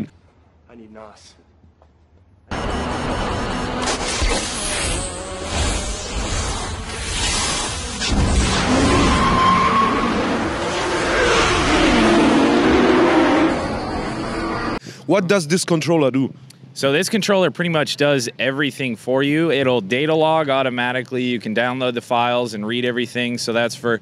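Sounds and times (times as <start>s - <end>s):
car engine revving: 2.5s - 14.8s.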